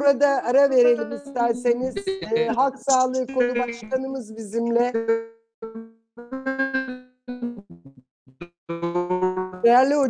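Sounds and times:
voice breaking up on video call: 0.0s - 5.0s.

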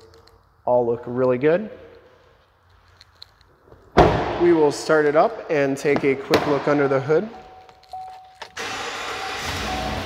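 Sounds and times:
truck door slam: 4.0s - 4.4s.

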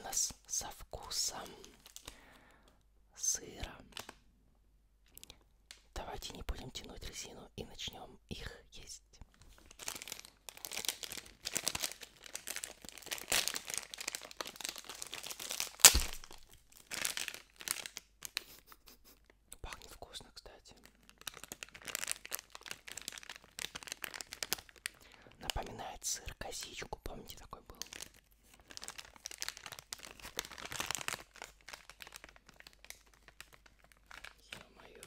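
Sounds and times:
plastic packet tearing and crinkling: 3.9s - 4.2s, 9.4s - 18.6s, 20.8s - 25.6s, 27.7s - 35.0s
sharp plastic snap: 15.8s - 16.4s.

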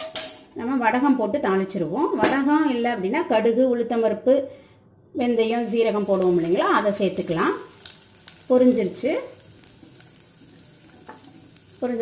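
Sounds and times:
woman speaking: 5.2s - 7.7s, 8.5s - 9.4s
spices sizzling in hot oil: 5.6s - 12.0s
oil popping: 6.0s - 12.0s.

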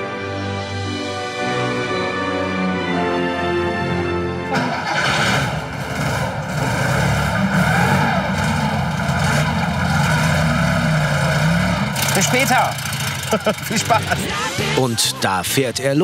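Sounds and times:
background music: 0.0s - 16.0s
car engine starting and running: 4.4s - 15.0s.

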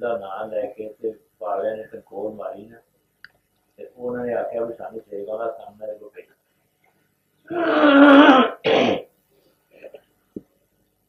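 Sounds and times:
people talking: 0.0s - 2.8s, 3.8s - 6.2s.

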